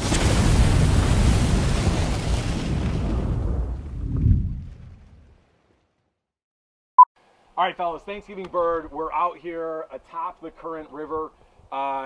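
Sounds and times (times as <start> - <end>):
fiery whoosh and boom: 0.0 - 5.4.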